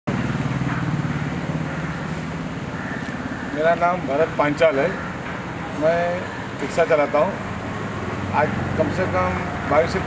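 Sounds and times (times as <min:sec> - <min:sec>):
auto-rickshaw engine idling: 0:00.1 - 0:10.0.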